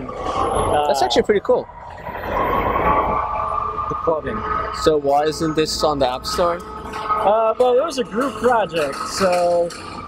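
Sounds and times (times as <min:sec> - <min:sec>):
siren rising tone: 0:00.0 - 0:09.3
traffic noise: 0:00.0 - 0:10.0.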